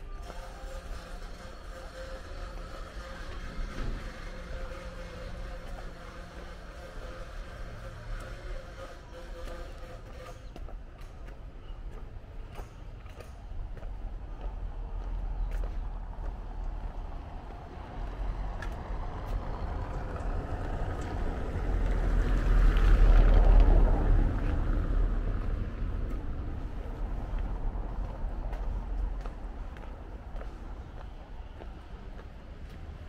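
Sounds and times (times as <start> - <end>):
motor vehicle passing by: 14.9 - 30.5.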